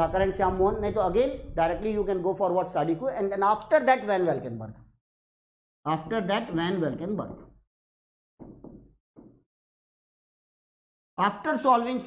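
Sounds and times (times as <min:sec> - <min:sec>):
pen tip knocking touchscreen: 0:08.4 - 0:09.4.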